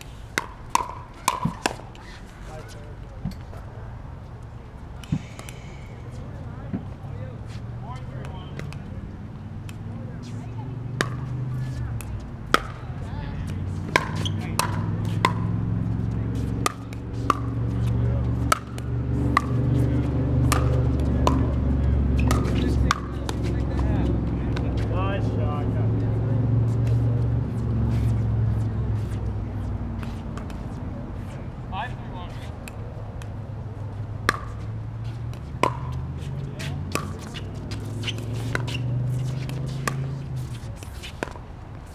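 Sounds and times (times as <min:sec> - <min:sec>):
paddles hitting plastic ball: 0:00.3 - 0:02.0, 0:11.0 - 0:15.6, 0:16.5 - 0:19.7, 0:20.4 - 0:23.5, 0:34.2 - 0:34.7, 0:35.3 - 0:36.2, 0:36.8 - 0:41.4.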